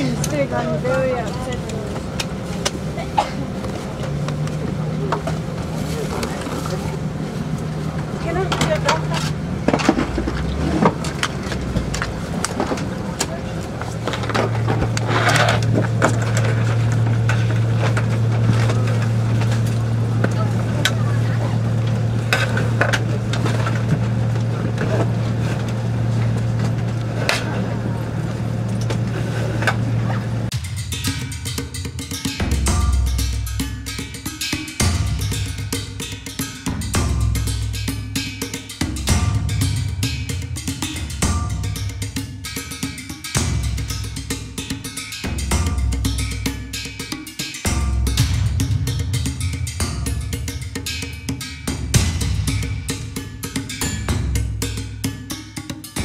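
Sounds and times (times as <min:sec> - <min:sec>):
faint voices: 0:00.0 - 0:30.5
airliner cabin hum: 0:00.0 - 0:56.0.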